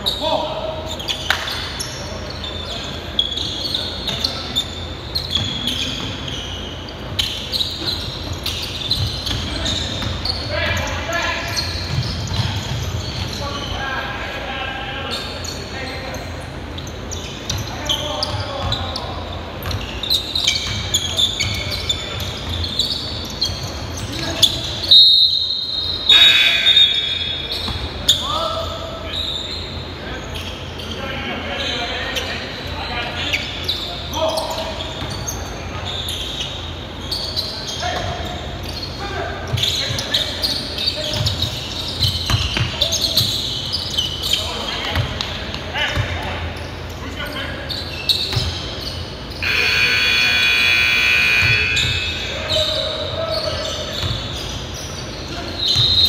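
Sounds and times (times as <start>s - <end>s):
players calling out: 0.0s - 45.0s, 47.4s - 56.0s
sneakers squeaking: 0.0s - 56.0s
basketball bouncing on wood floor: 11.8s - 13.4s, 42.0s - 43.3s
referee's whistle: 24.4s - 28.2s, 49.4s - 52.9s, 55.6s - 56.0s.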